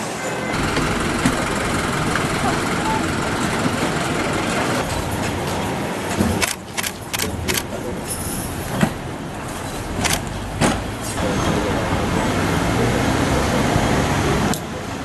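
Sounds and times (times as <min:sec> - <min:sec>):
street noise: 0:00.0 - 0:15.0.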